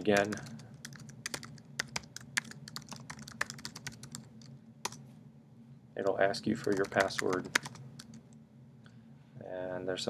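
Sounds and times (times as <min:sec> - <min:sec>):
faint low hum: 0:00.0 - 0:10.0
keyboard typing clicks: 0:00.2 - 0:05.0, 0:06.6 - 0:08.2.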